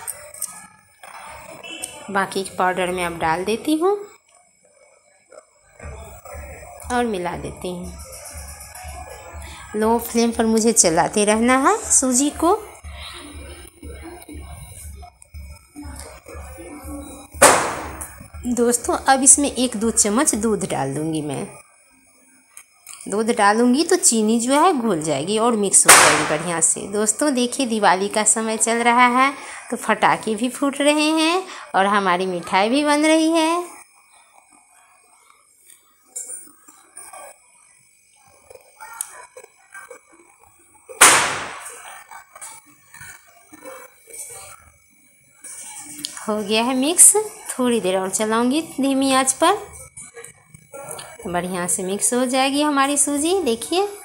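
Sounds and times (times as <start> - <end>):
faint background music: 0.0 - 54.0
firecracker bang: 17.4 - 18.2, 25.8 - 26.7, 41.0 - 41.9.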